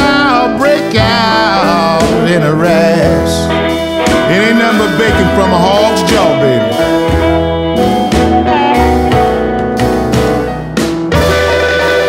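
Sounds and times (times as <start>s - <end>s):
blues band playing: 0.0s - 12.0s.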